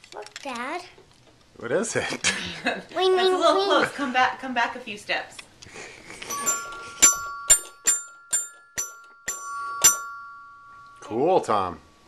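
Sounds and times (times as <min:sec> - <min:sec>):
bell-like chime ringing: 0:06.3 - 0:12.0.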